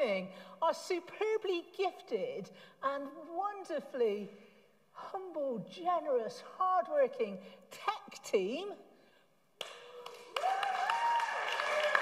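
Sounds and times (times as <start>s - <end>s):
congregation clapping: 9.6s - 12.0s.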